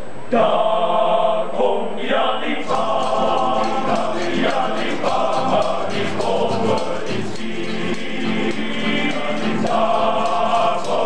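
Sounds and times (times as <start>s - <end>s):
male choir singing: 0.3s - 11.0s
hand clapping: 2.7s - 11.0s.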